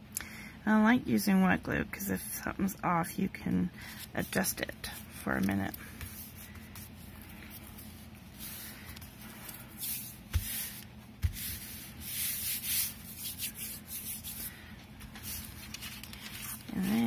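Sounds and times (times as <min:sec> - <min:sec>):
hands swishing on paper: 0:05.4 - 0:17.0.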